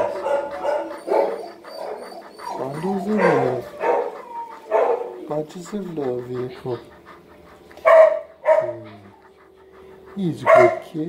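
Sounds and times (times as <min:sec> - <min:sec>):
dog barking: 0:00.0 - 0:05.4, 0:07.8 - 0:09.2, 0:09.8 - 0:11.0.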